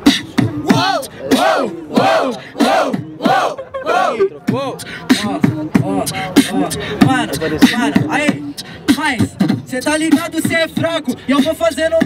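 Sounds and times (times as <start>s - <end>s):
human beatbox: 0.0s - 12.0s.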